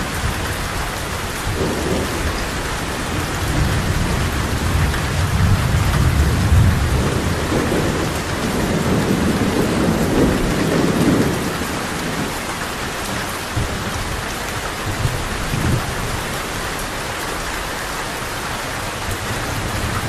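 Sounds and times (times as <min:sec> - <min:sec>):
rolling thunder: 0:00.0 - 0:12.4
heavy rain hissing: 0:00.0 - 0:20.0.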